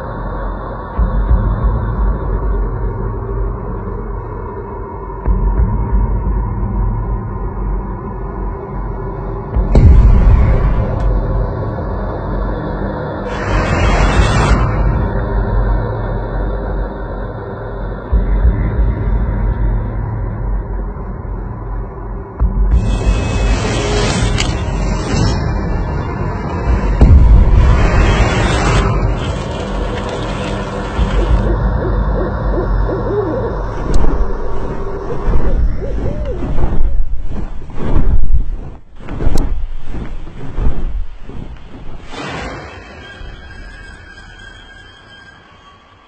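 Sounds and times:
deep rumbling drone: 0.0 - 42.2
owl hooting: 31.0 - 37.0.

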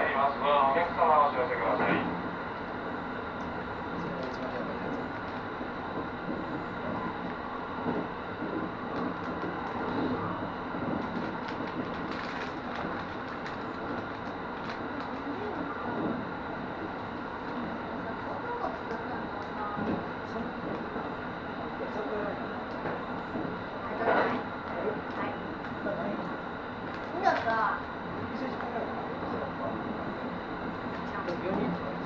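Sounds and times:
train wheels rumbling: 0.0 - 32.0.

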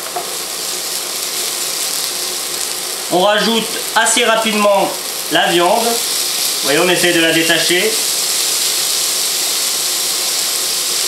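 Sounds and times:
onion sizzling in oil: 0.0 - 11.0.

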